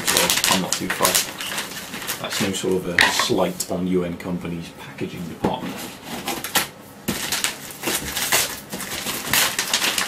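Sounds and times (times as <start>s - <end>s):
paper rustling: 0.0s - 2.8s, 5.7s - 10.0s.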